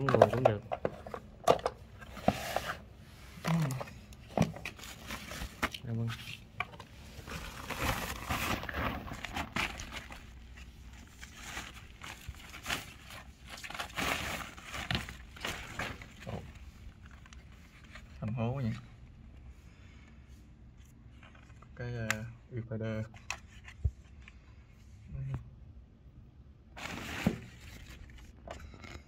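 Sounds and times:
plastic bag rustling and crinkling: 2.0s - 18.7s, 26.8s - 28.4s.

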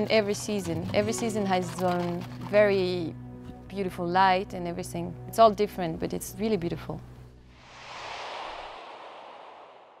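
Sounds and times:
soft whoosh: 7.6s - 10.0s.

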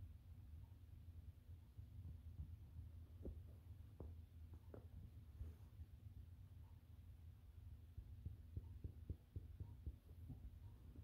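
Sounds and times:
fingertip taps on fabric cushion: 2.0s - 5.7s, 7.8s - 11.0s.

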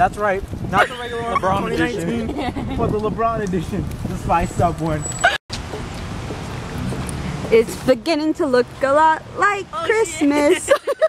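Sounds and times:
man speaking: 0.0s - 5.0s.

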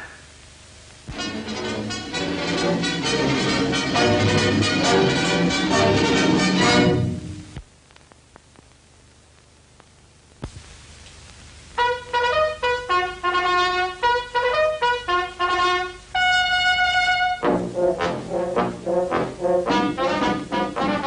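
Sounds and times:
faint hiss: 0.0s - 1.3s, 7.1s - 21.0s
solo trumpet playing: 1.1s - 7.4s, 11.8s - 21.0s
brass band playing: 1.1s - 7.5s, 11.8s - 21.0s.

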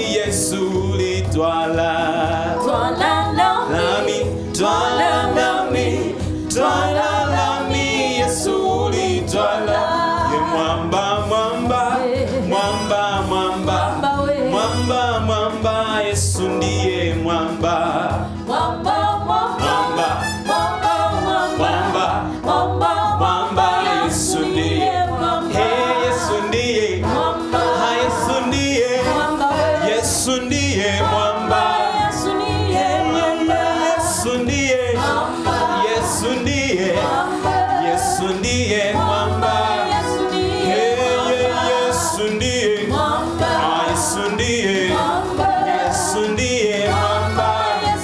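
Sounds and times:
man singing gospel: 0.0s - 2.8s, 3.6s - 18.4s, 19.6s - 20.4s, 21.6s - 22.4s, 23.2s - 31.8s, 32.8s - 48.0s
electronic keyboard: 0.0s - 48.0s
women singing backing vocals: 1.9s - 12.8s, 13.5s - 14.9s, 18.0s - 48.0s.

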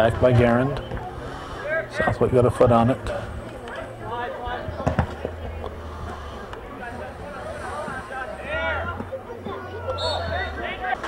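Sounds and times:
players and spectators shouting: 0.0s - 11.0s.

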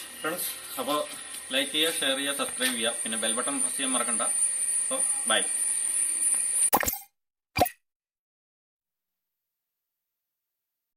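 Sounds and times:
pop sound effect: 6.7s - 7.8s.

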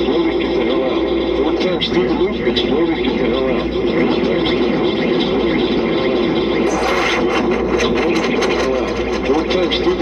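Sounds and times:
looped processed male voice: 0.0s - 10.0s
steady low hum: 0.0s - 10.0s.

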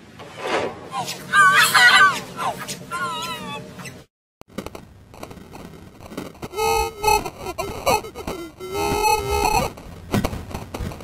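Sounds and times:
loud high wavering cry: 0.9s - 3.9s.

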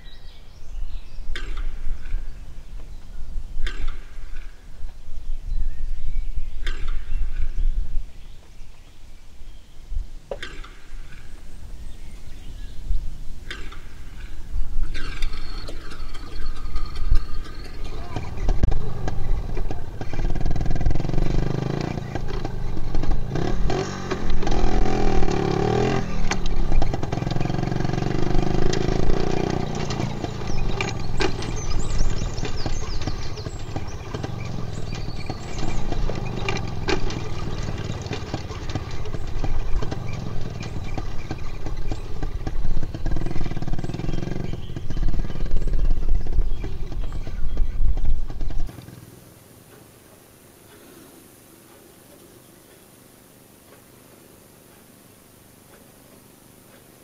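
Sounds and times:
small vehicle engine revving: 13.4s - 50.1s.

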